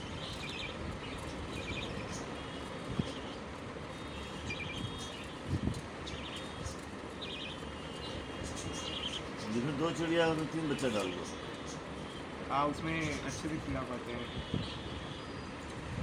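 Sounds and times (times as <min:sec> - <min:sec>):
budgerigars chirping: 0:00.0 - 0:15.6.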